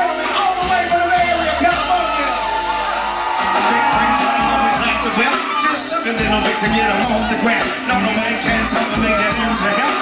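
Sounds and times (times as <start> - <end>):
live band playing hip-hop funk: 0.0 - 10.0
vocal through stage speakers: 0.0 - 10.0.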